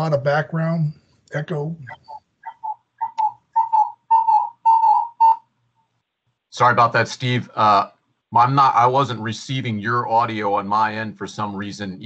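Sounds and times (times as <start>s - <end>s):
whistly ringing echo chirps: 1.9s - 5.4s.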